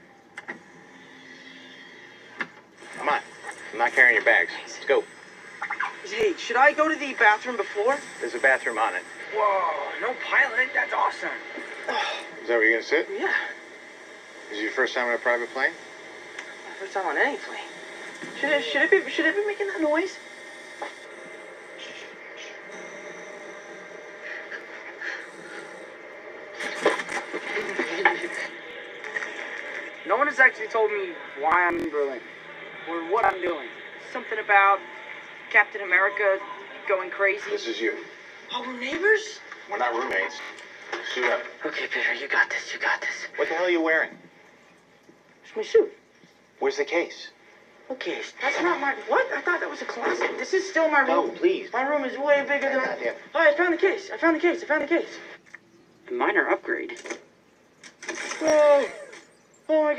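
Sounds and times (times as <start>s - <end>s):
jet cabin drone: 0.0s - 43.5s.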